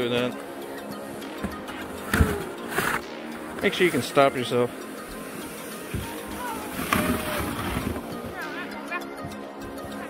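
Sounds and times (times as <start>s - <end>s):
background music: 0.0s - 10.0s
sled sliding on snow: 5.3s - 8.6s
sled bump: 5.8s - 8.5s.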